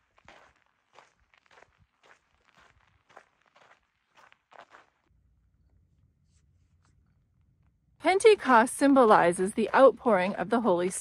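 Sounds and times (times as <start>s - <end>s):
footsteps on gravel: 0.0s - 5.1s, 8.5s - 11.0s.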